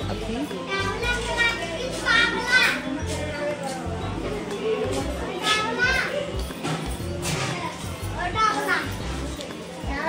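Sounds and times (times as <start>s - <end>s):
adults chatting: 0.0s - 10.0s
music: 0.0s - 10.0s.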